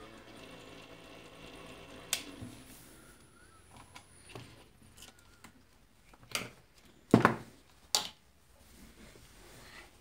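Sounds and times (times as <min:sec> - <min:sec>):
electrical hum: 0:00.0 - 0:06.0.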